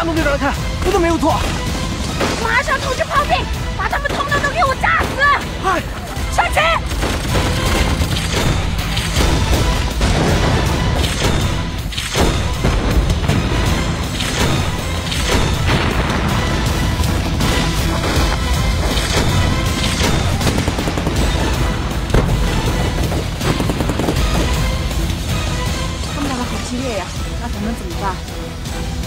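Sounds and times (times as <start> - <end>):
background music: 0.0 - 29.0
gunfire: 3.9 - 5.6, 6.8 - 25.0
mortars firing and shells exploding: 4.0 - 25.4.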